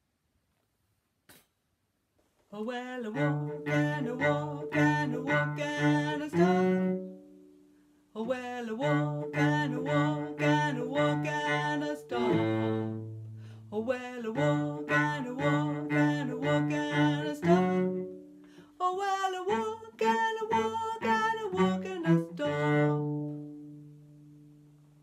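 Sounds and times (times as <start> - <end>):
woman singing: 2.5 - 7.1, 8.2 - 13.0, 13.7 - 18.1, 18.8 - 23.4.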